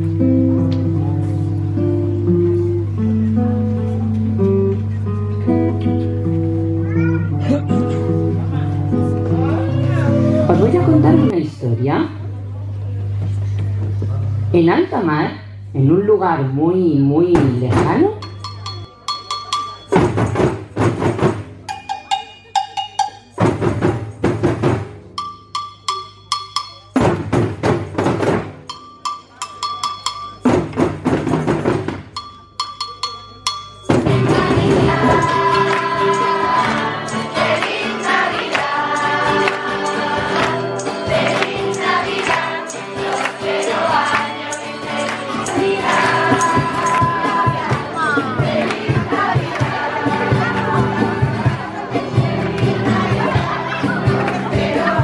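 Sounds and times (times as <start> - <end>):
classical guitar melody: 0.0 - 11.4
hand drums playing: 17.4 - 55.0.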